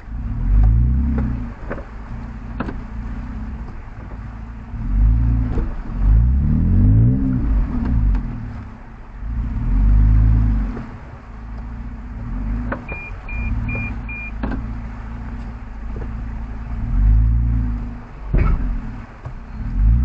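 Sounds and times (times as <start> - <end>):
vehicle engine revving: 0.0 - 20.0
short high beeps: 12.9 - 14.4.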